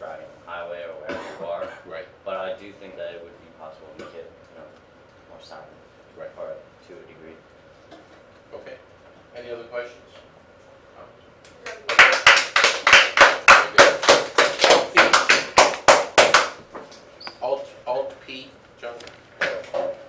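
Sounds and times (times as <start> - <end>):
small group applauding: 11.5 - 16.6.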